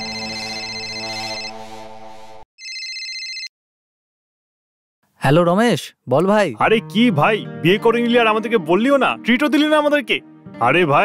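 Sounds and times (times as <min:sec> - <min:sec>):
smartphone ringtone: 0:00.0 - 0:01.6, 0:02.6 - 0:03.5.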